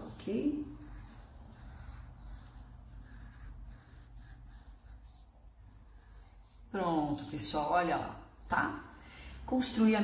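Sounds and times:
pencil strokes on paper: 0.0s - 10.0s.

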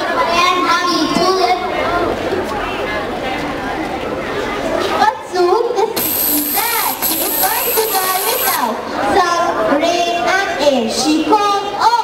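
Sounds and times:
children talking and calling out: 0.0s - 2.8s, 3.4s - 12.0s
thin high whine: 6.0s - 8.7s.

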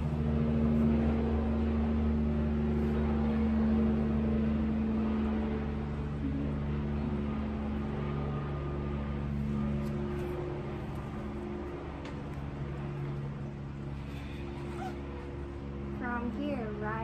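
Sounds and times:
low drone of held tones: 0.0s - 17.0s.

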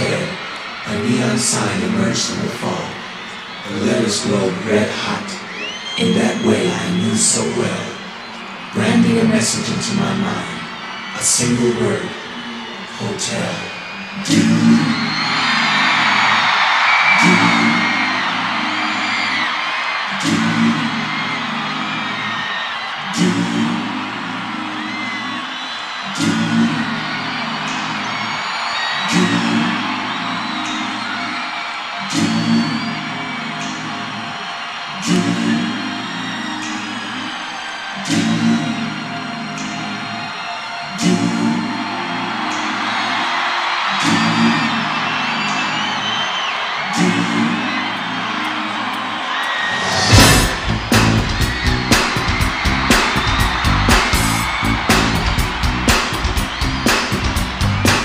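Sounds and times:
crowd screaming and whistling: 0.0s - 58.0s
recorded intro music: 46.8s - 58.0s.

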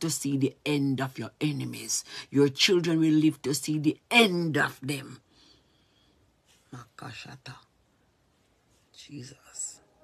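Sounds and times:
woman whispering prayer: 6.7s - 7.7s, 9.0s - 9.9s.

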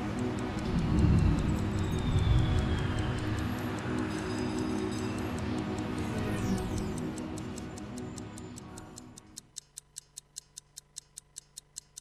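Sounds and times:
clock ticking: 0.0s - 12.0s.

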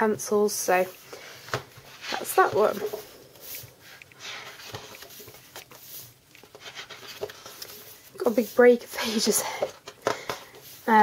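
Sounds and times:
paper pages rustling: 1.2s - 11.0s.

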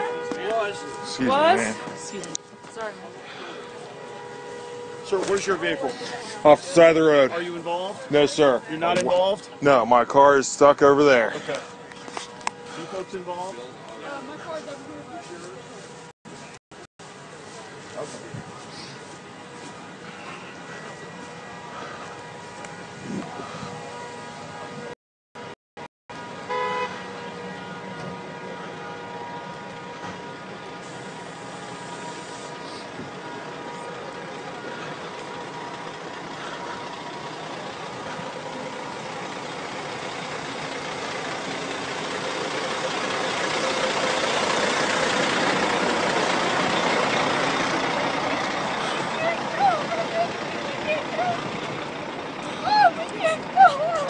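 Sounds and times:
vehicle horn held tone: 0.0s - 7.3s, 26.5s - 30.2s
highway traffic rush: 0.0s - 25.5s, 26.1s - 54.0s.

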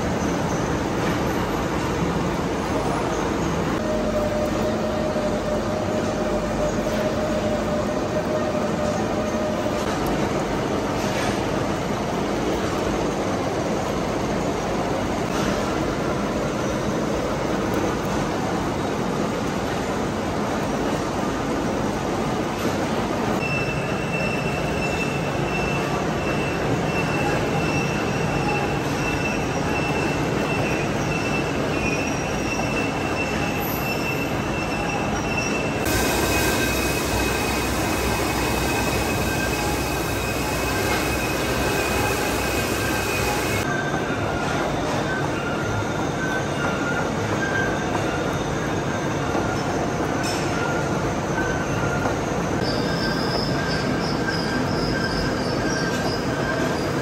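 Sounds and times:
thin high squeal: 31.2s - 44.0s.

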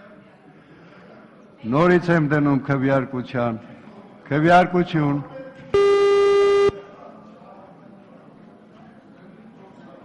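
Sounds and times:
electronic beep: 5.8s - 6.8s.

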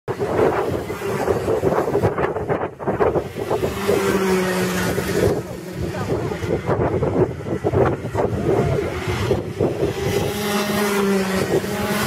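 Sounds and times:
kart engines passing: 0.1s - 12.0s
wind buffeting microphone: 0.1s - 12.0s.

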